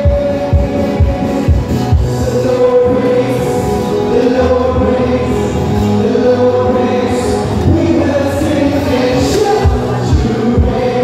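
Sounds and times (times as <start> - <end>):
instrumental backing: 0.0 - 11.0
voices singing worship song: 0.0 - 11.0.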